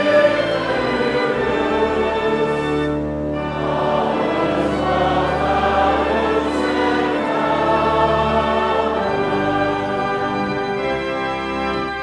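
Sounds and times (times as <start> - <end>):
congregation singing a hymn: 0.0 - 12.0
pipe organ chords: 0.0 - 12.0.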